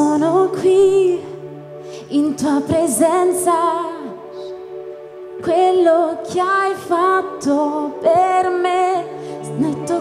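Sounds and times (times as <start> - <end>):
woman singing with vibrato: 0.0 - 4.6, 5.4 - 10.0.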